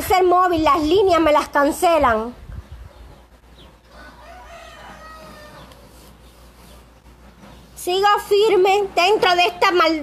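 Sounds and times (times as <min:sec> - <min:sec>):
rooster crowing: 0:03.9 - 0:05.9.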